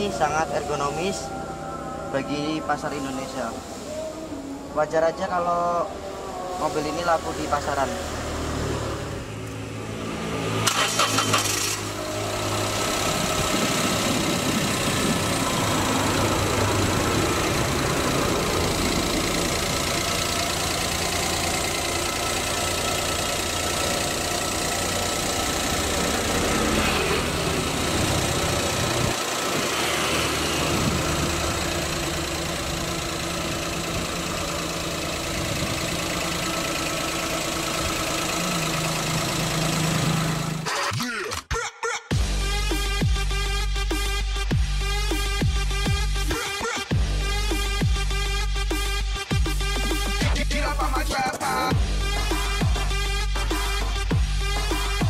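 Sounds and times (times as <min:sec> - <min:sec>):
car engine cranking and idling: 0:00.0 - 0:40.9, 0:42.2 - 0:55.0.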